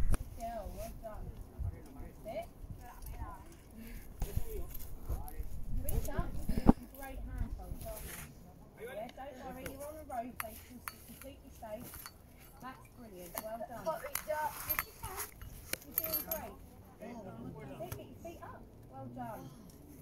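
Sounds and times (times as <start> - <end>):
wind rumble on microphone: 0.0 - 8.0
people talking in background: 0.3 - 20.0.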